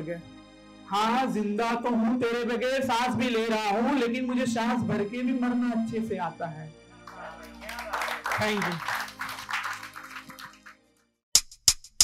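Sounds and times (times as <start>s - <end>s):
soft background music: 0.0s - 11.1s
audience applause: 7.1s - 10.8s.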